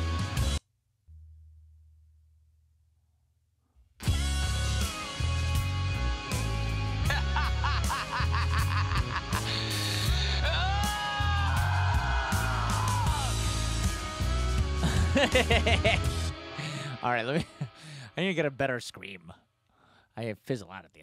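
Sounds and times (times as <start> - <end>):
heavy rock music: 0.0 - 0.6, 4.0 - 18.1
laugh-like vocal: 7.0 - 10.7, 14.8 - 16.3
effected vocals: 8.4 - 13.4.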